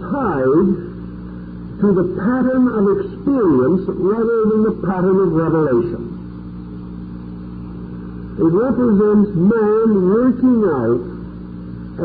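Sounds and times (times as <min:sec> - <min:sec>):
faint tape hiss: 0:00.0 - 0:12.0
steady low hum: 0:00.0 - 0:12.0.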